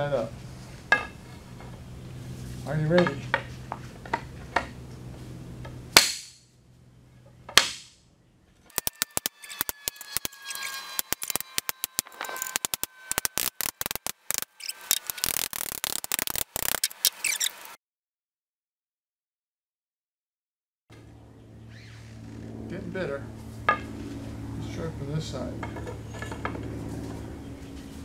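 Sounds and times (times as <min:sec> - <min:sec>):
hammer striking metal rod: 0:06.0 - 0:06.4.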